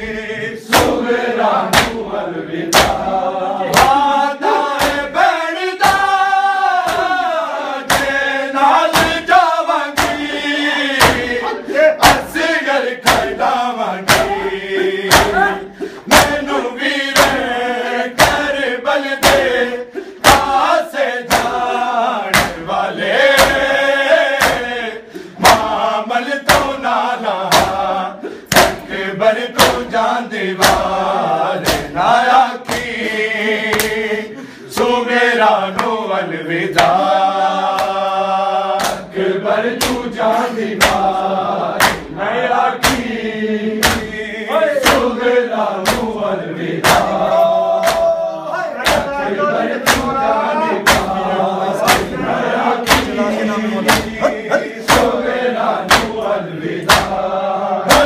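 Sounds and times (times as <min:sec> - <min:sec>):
men chanting: 0:00.0 - 0:58.0
hands slapping chests: 0:00.7 - 0:02.1, 0:02.7 - 0:26.8, 0:27.5 - 0:30.0, 0:30.6 - 0:31.0, 0:31.6 - 0:34.1, 0:35.7 - 0:36.0, 0:36.7 - 0:39.1, 0:39.7 - 0:43.2, 0:43.8 - 0:44.2, 0:44.8 - 0:46.2, 0:46.8 - 0:48.2, 0:48.8 - 0:49.2, 0:49.8 - 0:50.2, 0:50.8 - 0:51.2, 0:51.8 - 0:57.2.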